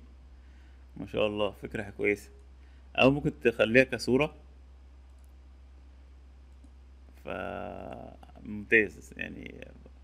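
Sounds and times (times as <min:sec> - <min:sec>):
low electrical hum: 0:00.0 - 0:10.0
faint clicks: 0:05.0 - 0:05.4, 0:06.5 - 0:06.8.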